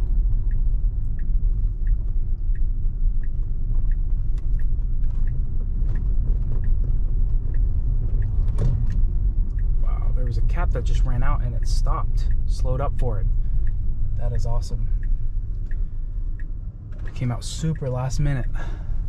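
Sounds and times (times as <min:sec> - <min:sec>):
road and tyre rumble: 0:00.0 - 0:19.0
turn signal clicking: 0:00.0 - 0:19.0.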